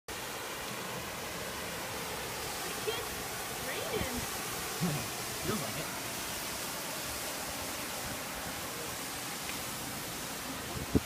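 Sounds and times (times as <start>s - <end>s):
waterfall rushing hiss: 0.1s - 11.0s.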